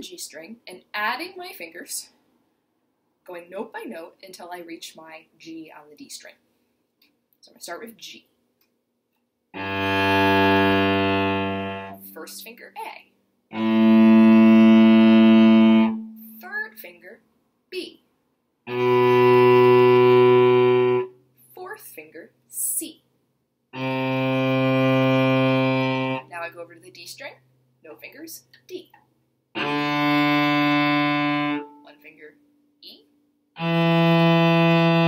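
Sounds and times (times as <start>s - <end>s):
cello bowed long note: 9.6s - 12.2s, 13.5s - 16.3s, 18.7s - 21.2s, 23.8s - 26.3s, 29.6s - 31.9s, 33.6s - 35.0s.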